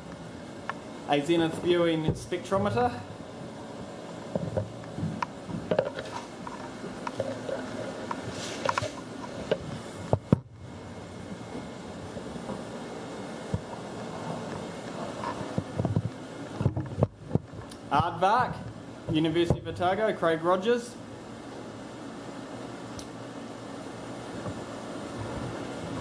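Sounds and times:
ventilation fans humming: 0.0 - 26.0.

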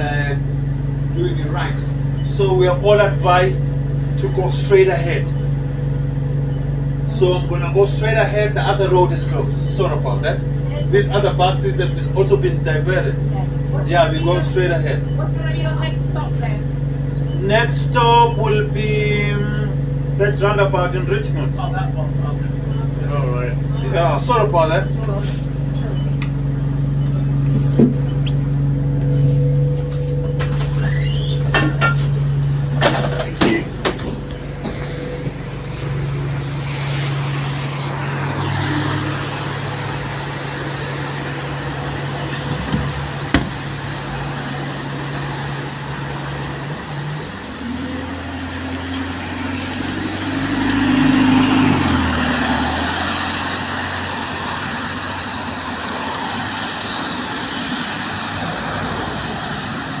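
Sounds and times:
diesel bus engine: 0.0 - 60.0
road noise: 0.0 - 60.0.

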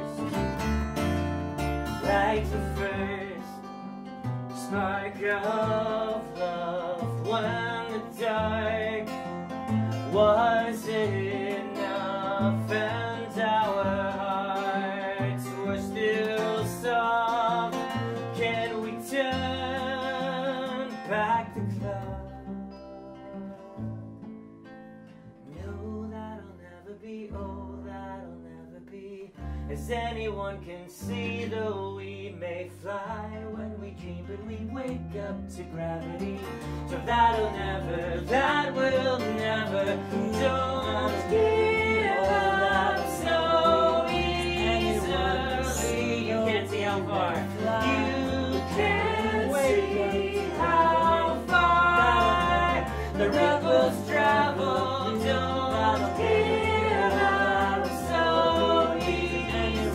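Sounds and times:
acoustic guitar: 0.0 - 59.9
double bass: 0.0 - 59.9
man singing: 2.0 - 3.8, 4.6 - 22.5, 25.5 - 59.9.

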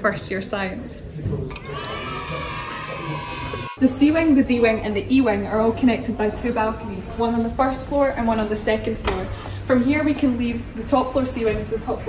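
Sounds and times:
young voices cheering: 1.6 - 3.8.

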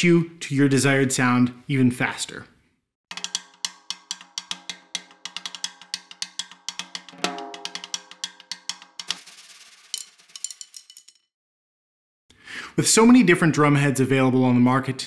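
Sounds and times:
snare drum strokes: 7.1 - 10.7.

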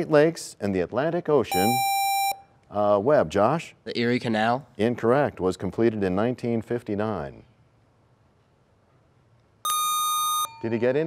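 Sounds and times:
electronic buzzer beep: 1.5 - 2.5, 9.6 - 10.7.

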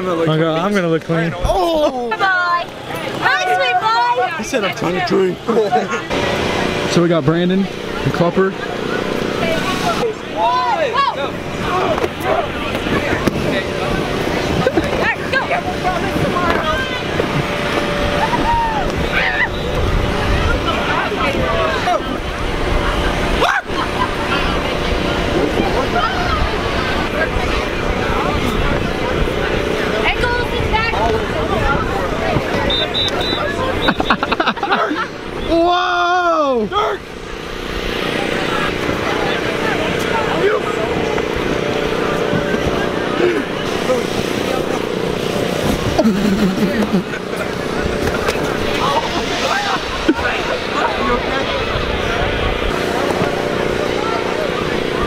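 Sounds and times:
faint voices: 0.0 - 55.0
teenagers talking: 0.0 - 55.0
air blower droning: 1.8 - 55.0
person whooping: 18.2 - 19.6
laughter: 23.4 - 24.4, 33.8 - 35.2, 45.9 - 47.6.

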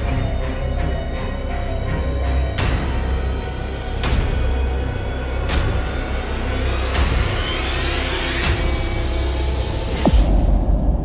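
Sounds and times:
film score music: 0.0 - 11.0.

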